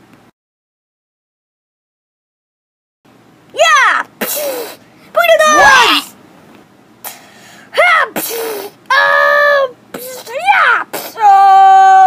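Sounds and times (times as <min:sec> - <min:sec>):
child making vocal sounds: 0:03.6 - 0:06.1, 0:07.7 - 0:12.0.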